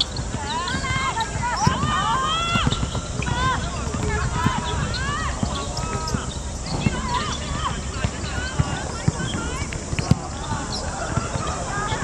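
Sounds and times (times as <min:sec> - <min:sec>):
women shouting and calling: 0:00.3 - 0:09.7.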